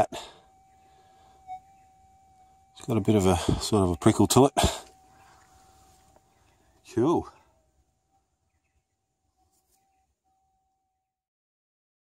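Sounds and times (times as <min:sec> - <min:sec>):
metal detector threshold tone: 0:00.0 - 0:07.5.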